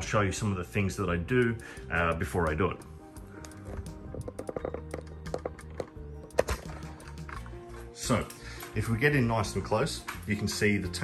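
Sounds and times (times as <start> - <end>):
background music with held notes: 0.0 - 11.0
phone handling clicks and knocks: 3.6 - 7.6.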